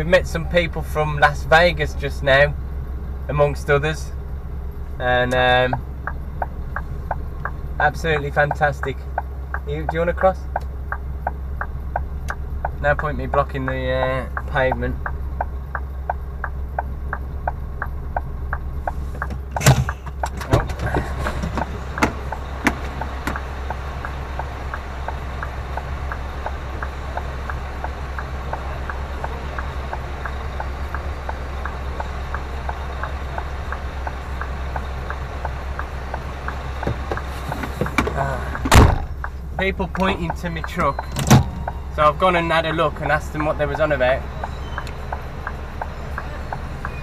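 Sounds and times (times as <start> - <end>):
diesel engine idling: 0.0 - 47.0
steady ticking: 0.0 - 47.0
sharp knocks: 19.2 - 23.4.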